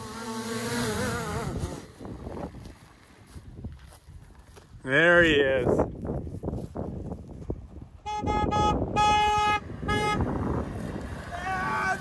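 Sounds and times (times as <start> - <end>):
drone propellers buzzing: 0.0 - 2.4.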